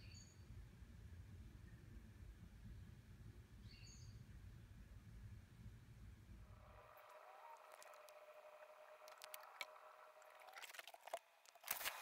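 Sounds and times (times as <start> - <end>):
faint background hum: 0.0 - 12.0
soft clicks: 6.6 - 12.0.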